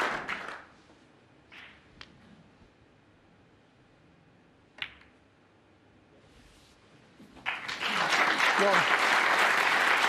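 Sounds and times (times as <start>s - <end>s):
balls knocking together: 4.7s - 5.2s.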